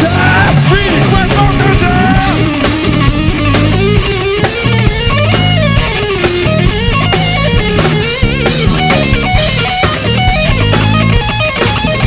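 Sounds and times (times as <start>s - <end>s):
bass guitar: 0.0s - 12.0s
drums and cymbals: 0.0s - 12.0s
electric guitar lead: 0.0s - 12.0s.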